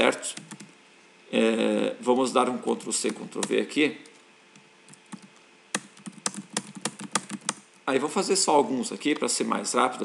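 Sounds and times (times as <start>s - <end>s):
computer keyboard keys tapping: 0.4s - 0.7s, 3.0s - 7.6s.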